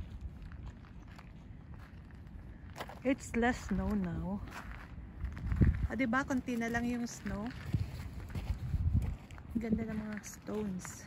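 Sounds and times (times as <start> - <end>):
footsteps on river stones: 0.0 - 11.0.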